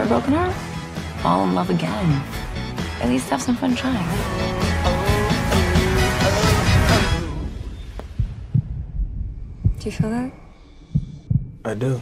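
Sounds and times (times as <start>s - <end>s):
heartbeat thumps: 7.6s - 12.0s.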